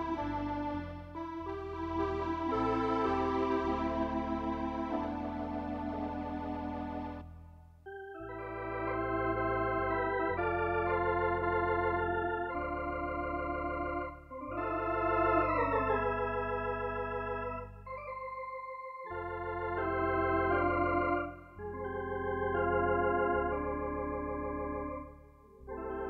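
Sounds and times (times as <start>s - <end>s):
electronic organ chords with vibrato: 0.0s - 26.0s
organ bass notes: 0.0s - 26.0s.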